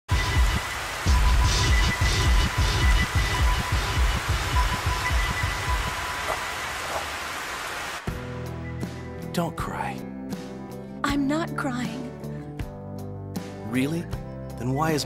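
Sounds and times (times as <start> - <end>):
steady rain hiss: 0.1 - 8.2.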